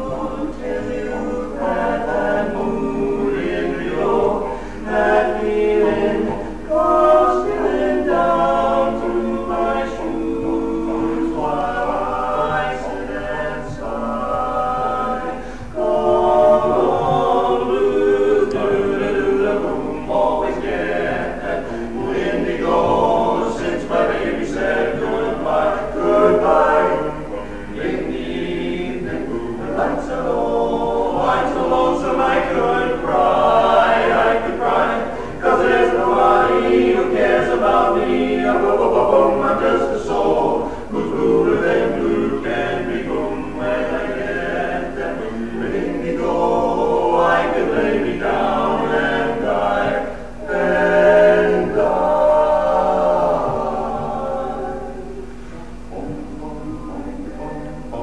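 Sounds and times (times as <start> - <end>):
men singing a cappella harmony: 0.0 - 58.0.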